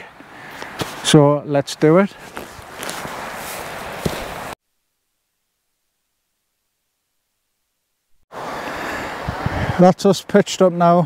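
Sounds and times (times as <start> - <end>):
footsteps through dry grass: 2.1 - 4.6.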